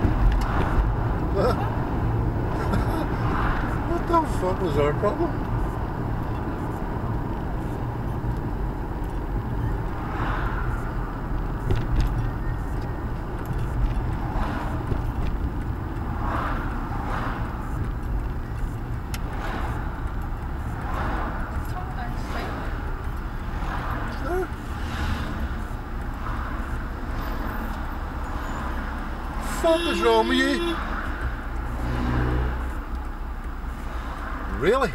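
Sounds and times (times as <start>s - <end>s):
car engine and road rumble: 0.0s - 34.9s.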